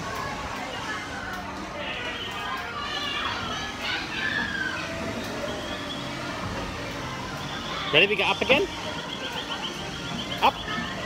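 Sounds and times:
amusement park ride running: 0:00.0 - 0:11.0
children calling and chattering: 0:00.0 - 0:11.0.

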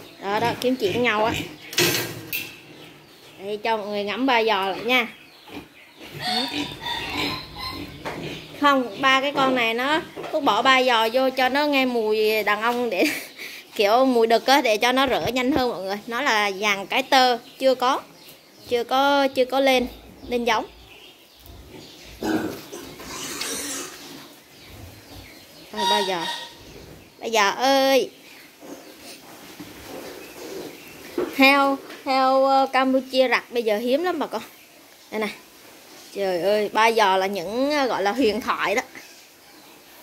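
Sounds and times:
young boars grunting: 0:04.8 - 0:09.4, 0:21.7 - 0:24.0.

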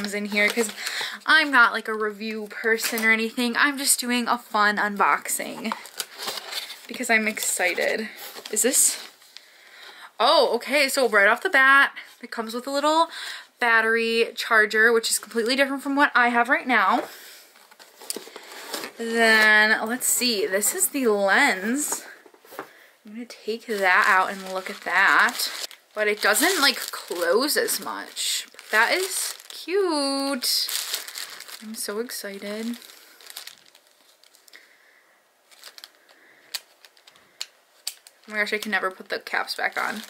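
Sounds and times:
packaging rustling: 0:00.0 - 0:03.2, 0:04.9 - 0:09.5, 0:17.0 - 0:22.8, 0:23.5 - 0:34.7, 0:35.5 - 0:40.0
plastic bag crinkling: 0:00.0 - 0:04.1, 0:04.7 - 0:09.5, 0:16.8 - 0:22.8, 0:23.4 - 0:34.7, 0:35.4 - 0:40.0.

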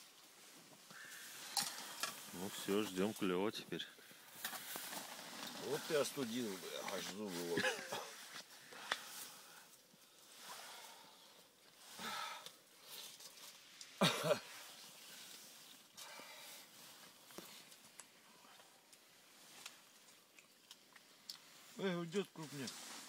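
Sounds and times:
faint rustling: 0:00.0 - 0:23.0.

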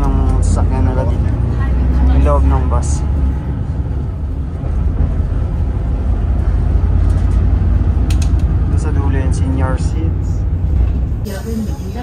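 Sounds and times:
bus engine low rumble: 0:00.0 - 0:12.0.

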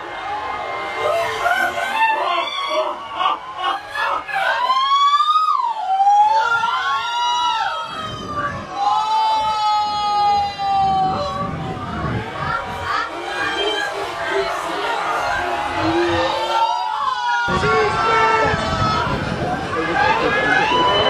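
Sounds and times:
crowd shouting and screaming: 0:00.0 - 0:21.0
long drawn-out cries: 0:00.0 - 0:21.0.

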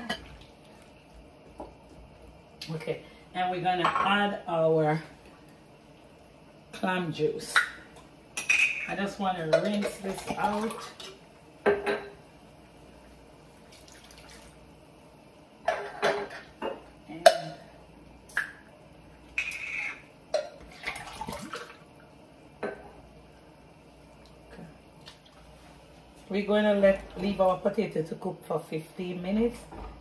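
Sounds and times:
liquid pouring: 0:13.5 - 0:14.6.

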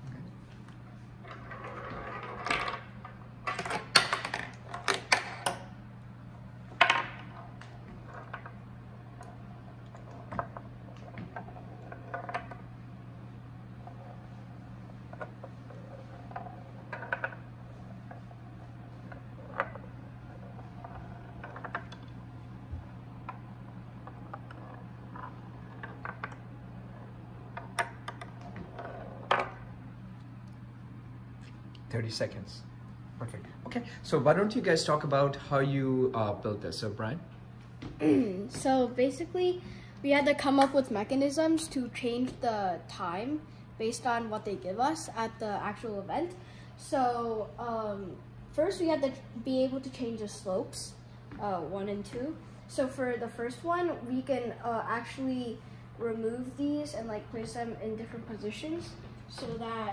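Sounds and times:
ball clattering on wooden track: 0:15.1 - 0:17.5, 0:19.0 - 0:22.2, 0:23.2 - 0:29.6.

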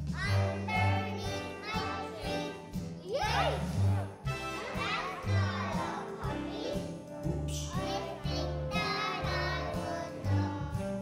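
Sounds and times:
children singing: 0:00.2 - 0:10.9.

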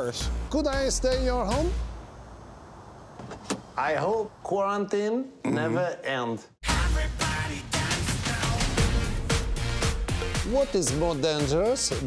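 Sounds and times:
low steady background hiss: 0:00.0 - 0:06.5
car door latch clicks: 0:03.2 - 0:03.7.

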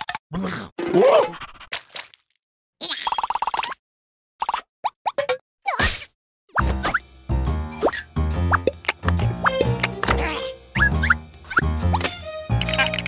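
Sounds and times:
playful background music: 0:06.5 - 0:13.0.

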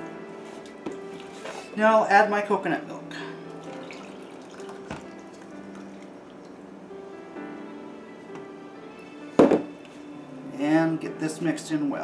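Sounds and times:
background music: 0:00.0 - 0:12.0
coconut milk pouring and dripping: 0:03.1 - 0:06.8
knock: 0:09.4 - 0:09.7.

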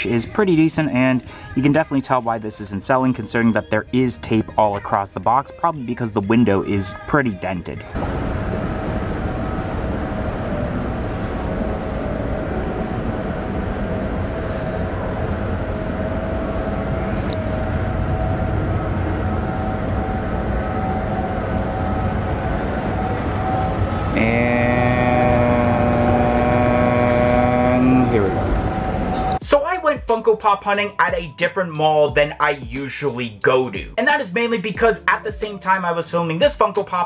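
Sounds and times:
escalator mechanical drone: 0:00.0 - 0:29.6
escalator whine: 0:00.0 - 0:33.9.

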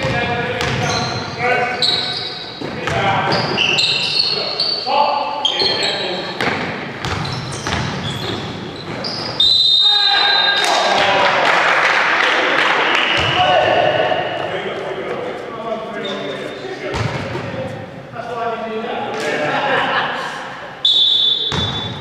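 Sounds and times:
basketball bouncing: 0:00.0 - 0:01.0, 0:06.4 - 0:09.1, 0:13.2 - 0:13.4, 0:21.5 - 0:22.0
shoes squeaking on court floor: 0:00.0 - 0:10.7, 0:15.1 - 0:17.9, 0:20.8 - 0:22.0
long high whistle blast: 0:20.8 - 0:21.5.

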